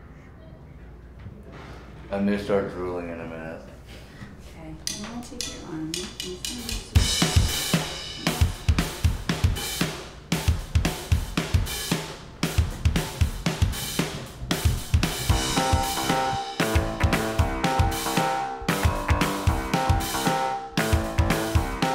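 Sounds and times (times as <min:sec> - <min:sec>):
drum kit beat: 0:04.9 - 0:21.9
pitched instrument notes: 0:14.8 - 0:21.9.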